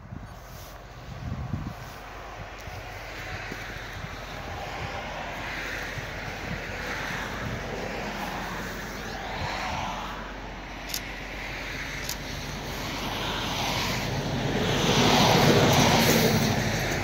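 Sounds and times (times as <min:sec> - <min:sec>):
distant motor vehicle: 0:00.0 - 0:17.0
wind: 0:00.0 - 0:17.0.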